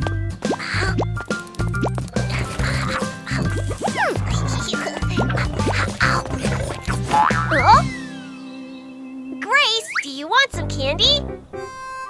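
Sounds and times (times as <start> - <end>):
bouncy cartoon music with bass beat: 0.0 - 8.1.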